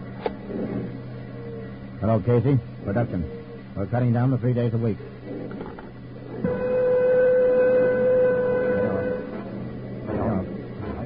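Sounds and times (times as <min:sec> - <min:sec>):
steady horn-like tone: 0:06.3 - 0:11.0.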